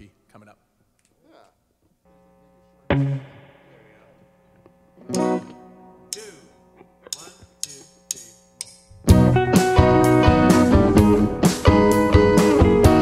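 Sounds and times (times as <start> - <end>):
electric guitar chords ringing: 2.1 - 13.0
full band playing loudly: 9.1 - 13.0.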